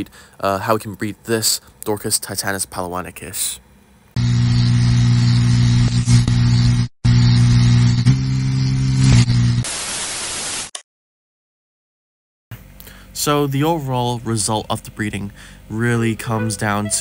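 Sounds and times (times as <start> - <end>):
white noise static burst: 4.2 - 8.0, 9.0 - 10.7
loud low electronic buzz: 4.2 - 9.6
static hiss: 9.0 - 10.7.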